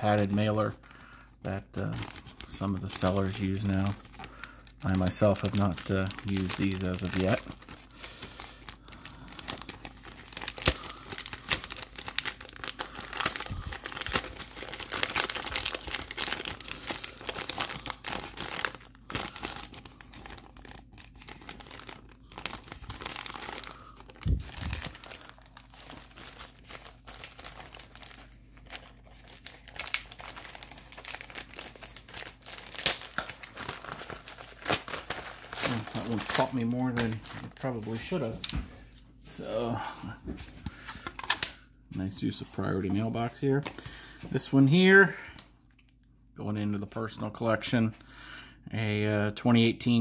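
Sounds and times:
padded mailer crinkling and tearing: 0.0 - 38.6.

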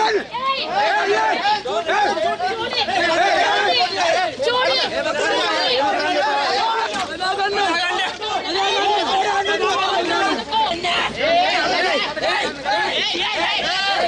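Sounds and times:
crowd voices talking over one another: 0.0 - 14.0.

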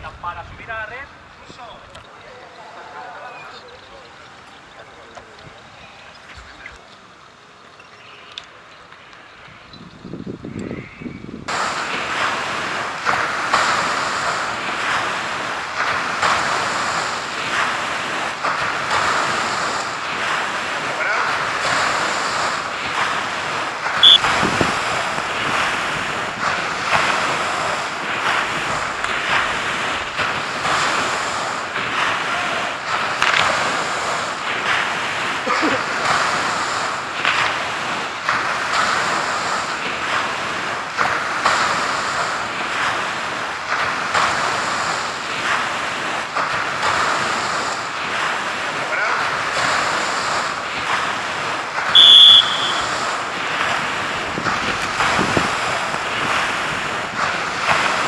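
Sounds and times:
surf and water splashing: 0.0 - 58.0
short high-pitched tone: 24.0 - 24.2, 52.0 - 52.8.

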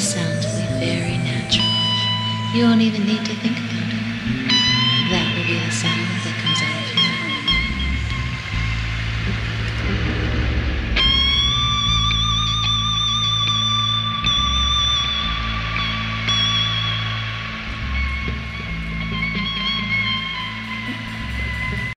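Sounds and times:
bass line: 0.0 - 21.9
live rock music: 0.0 - 21.9
high lead guitar note: 3.6 - 20.7.

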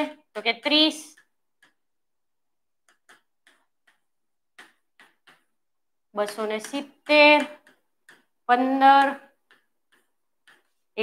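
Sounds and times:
chalk tapping on blackboard: 0.0 - 11.0.

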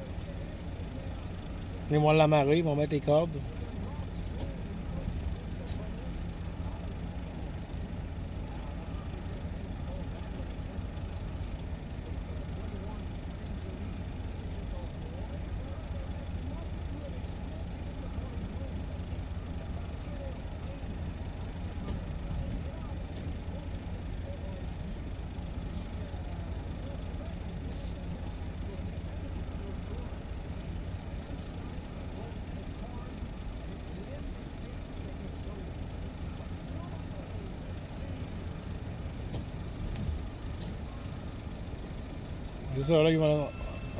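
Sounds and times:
faint distant voices: 0.0 - 43.9
low engine rumble: 0.0 - 43.9.

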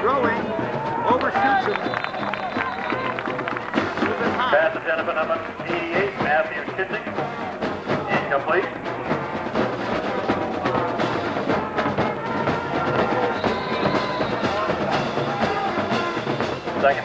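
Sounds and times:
band playing horns and drums: 0.0 - 17.0.

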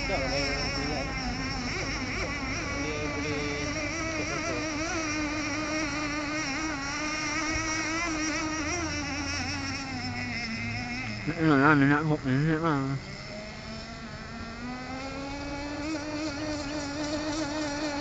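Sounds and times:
model boat engine buzzing whine: 0.0 - 18.0.

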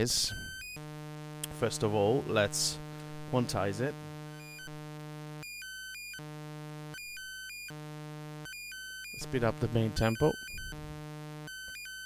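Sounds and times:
synthesizer alternating buzzy notes: 0.0 - 12.0.

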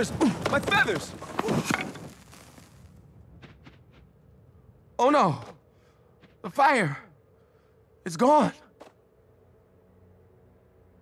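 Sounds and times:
faint fire crackles: 0.0 - 8.0
faint fire hiss: 0.8 - 3.3.

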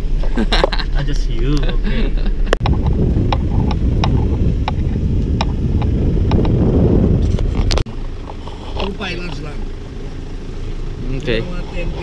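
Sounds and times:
wind rumbling on microphone: 0.0 - 9.0.

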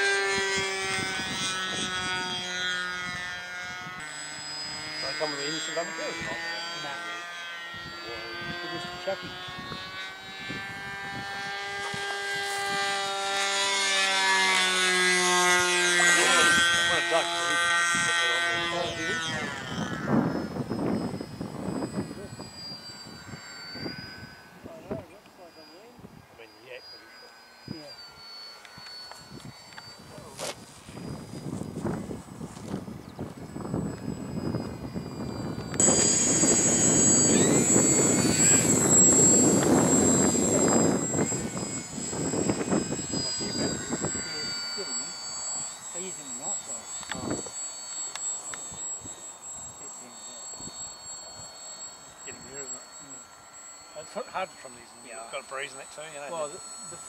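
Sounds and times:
high whine with rushing sound: 0.0 - 57.0
model airplane motor droning: 0.0 - 57.0.

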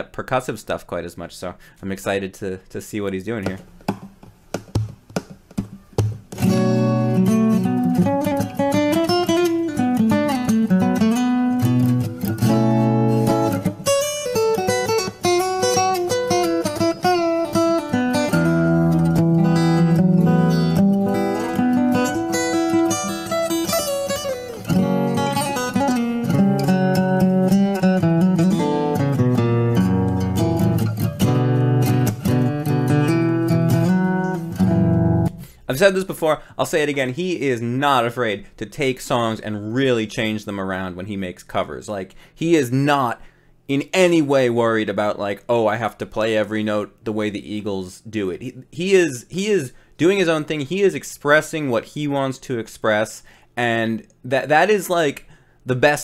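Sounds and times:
fingerstyle acoustic guitar: 3.4 - 35.6.

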